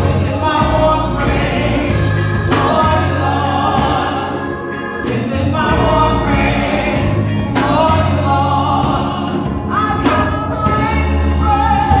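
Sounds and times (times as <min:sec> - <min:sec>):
women singing in harmony: 0:00.0 - 0:12.0.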